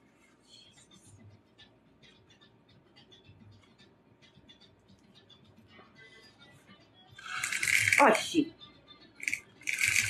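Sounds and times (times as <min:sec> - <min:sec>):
faint background music: 0:00.0 - 0:10.0
candies rattling in cardboard box: 0:07.2 - 0:08.2.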